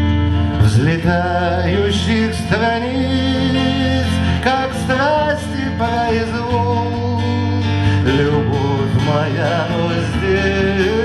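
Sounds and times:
acoustic guitar: 0.0 - 11.0
man singing without words: 0.4 - 11.0.

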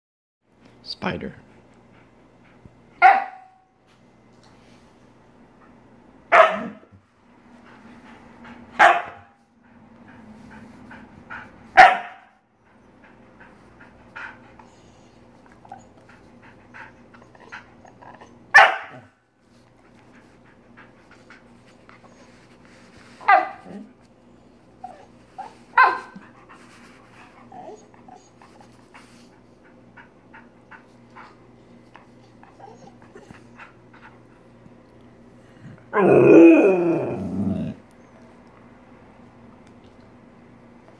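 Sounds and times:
dog barking: 3.0 - 3.6, 6.3 - 6.9, 8.8 - 9.4, 11.8 - 12.4, 18.6 - 19.1, 23.2 - 23.8, 25.8 - 26.2.

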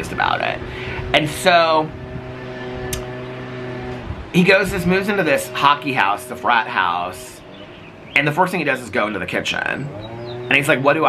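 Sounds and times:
machine humming: 0.0 - 11.0
short click: 2.9 - 3.1.

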